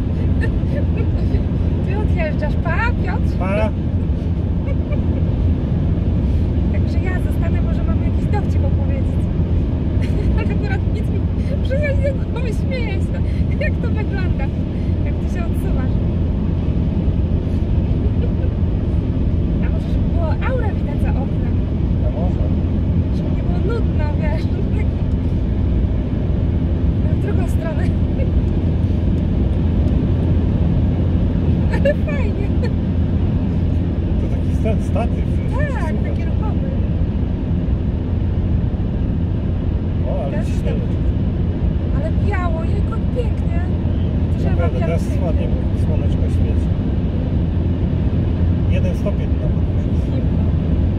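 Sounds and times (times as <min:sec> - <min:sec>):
car road and engine rumble: 0:00.0 - 0:50.9.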